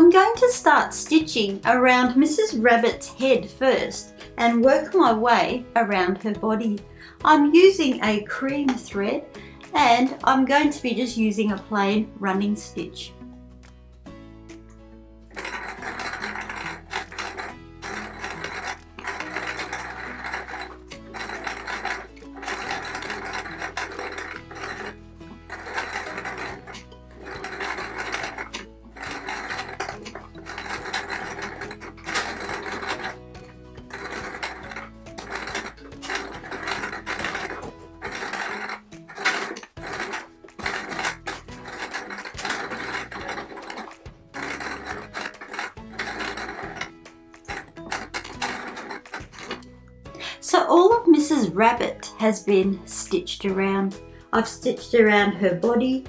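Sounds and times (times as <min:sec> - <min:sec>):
background music: 0:00.0 - 0:56.0
electric sewing machine stitching: 0:15.3 - 0:50.2.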